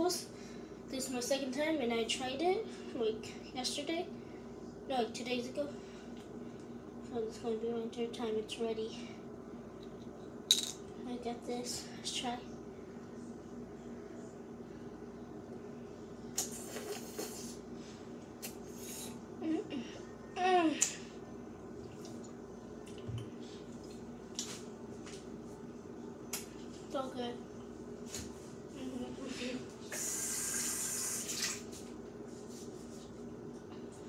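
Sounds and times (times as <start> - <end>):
faint steady hum: 0.0 - 34.0
tap water running: 30.0 - 31.7.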